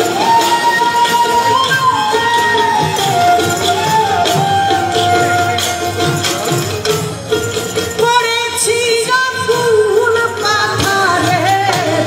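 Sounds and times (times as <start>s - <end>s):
drums: 0.0s - 12.0s
woman singing folk song: 8.0s - 12.0s.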